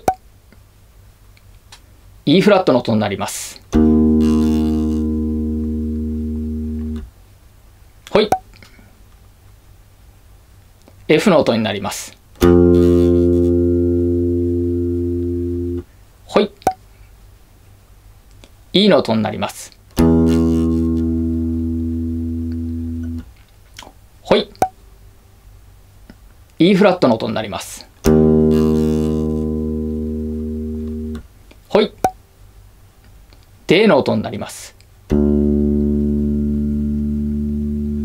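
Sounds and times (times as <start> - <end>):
bass guitar sustained note: 3.7 - 7.1, 12.4 - 15.8, 20.0 - 23.3, 28.0 - 31.2, 35.1 - 38.0.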